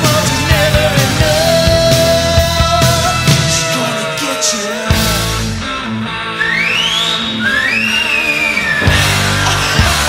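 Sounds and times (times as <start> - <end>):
rock music: 0.0 - 10.0.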